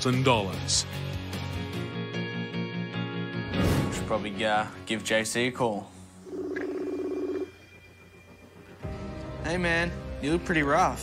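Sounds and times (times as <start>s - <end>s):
phone ringing tone: 6.2s - 7.9s.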